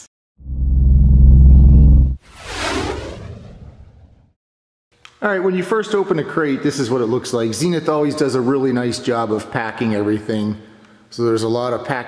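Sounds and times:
whoosh: 0.4s - 4.4s.

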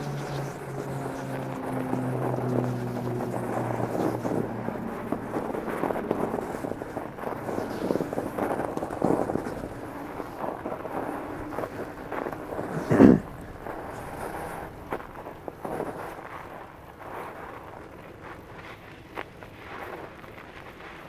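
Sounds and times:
bike tyres crunching over snow: 0.0s - 21.0s.

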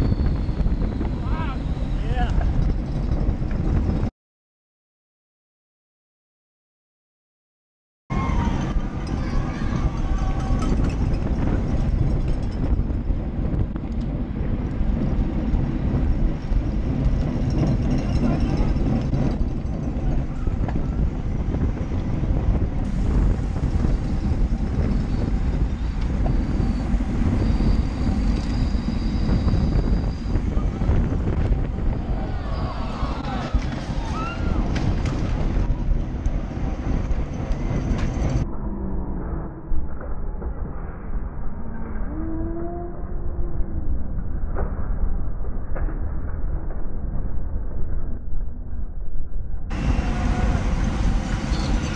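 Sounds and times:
wind buffeting microphone: 0.0s - 4.1s, 8.1s - 48.5s, 49.6s - 51.9s
faint spectators shouting: 8.1s - 10.8s, 31.8s - 35.0s
tyre and road noise: 8.1s - 43.2s, 49.7s - 51.9s.

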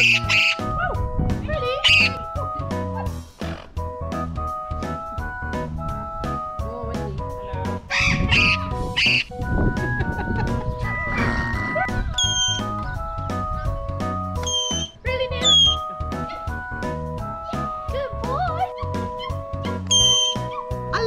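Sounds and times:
parrot whistled calls: 0.0s - 0.6s, 7.9s - 9.3s, 11.1s - 12.8s, 14.4s - 15.9s, 19.9s - 20.7s
background music: 0.0s - 21.0s
parrot screaming: 7.9s - 9.2s, 12.2s - 12.6s, 14.4s - 15.8s, 19.9s - 20.6s.

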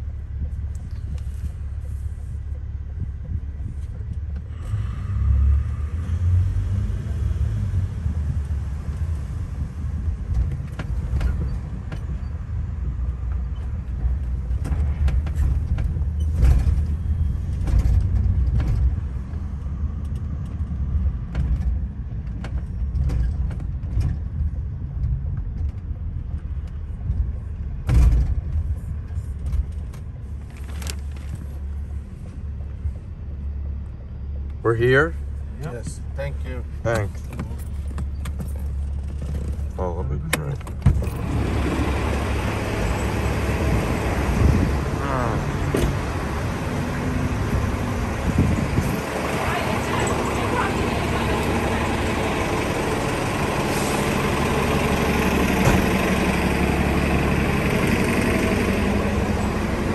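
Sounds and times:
car cabin road rumble: 0.0s - 59.9s
thump: 27.8s - 28.4s.

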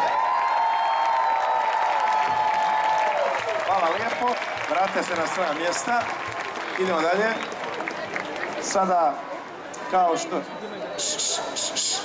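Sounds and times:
crowd noise: 0.0s - 12.0s
man speaking over public address: 3.6s - 7.5s, 8.6s - 12.0s.

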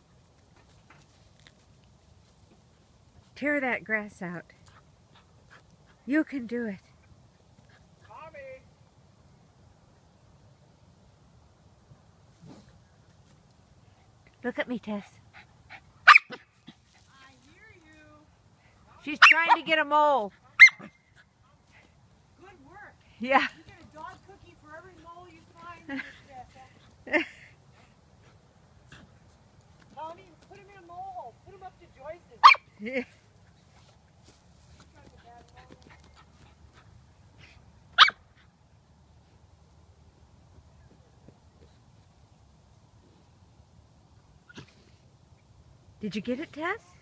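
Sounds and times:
dog yipping: 16.1s - 16.5s, 20.6s - 20.9s, 32.4s - 32.7s, 38.0s - 38.2s.

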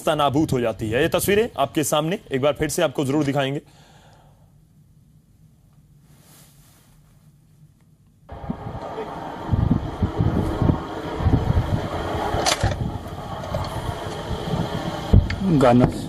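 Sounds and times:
wind buffeting microphone: 8.3s - 16.0s.

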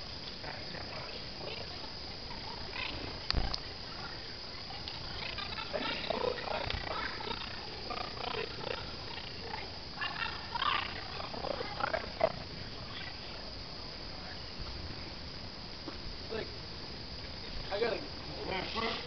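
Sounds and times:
fire crackling and hissing: 0.0s - 19.0s.

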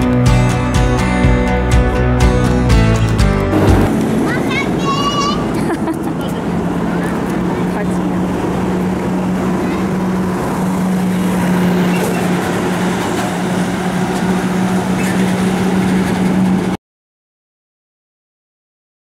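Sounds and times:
road traffic engine hum: 0.0s - 16.8s
people's voices: 4.1s - 10.6s.

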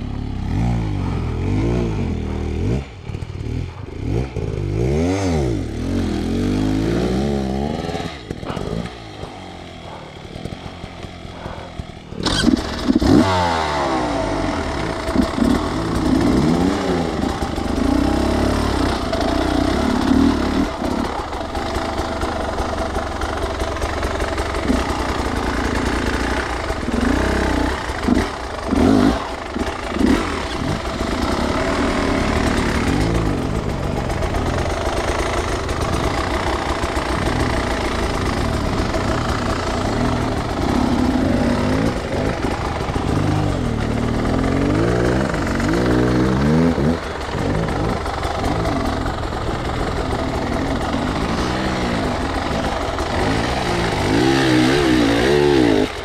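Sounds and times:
motorcycle engine revving: 0.0s - 56.0s.

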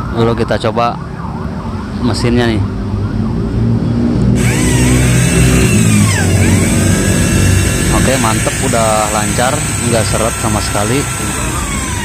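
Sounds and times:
electric drill motor whine: 4.4s - 12.0s.

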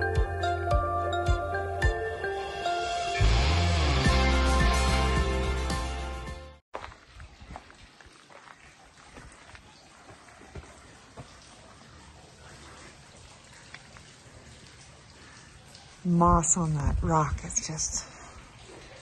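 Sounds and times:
background music: 0.0s - 6.6s
faint outdoor ambience: 6.8s - 19.0s.

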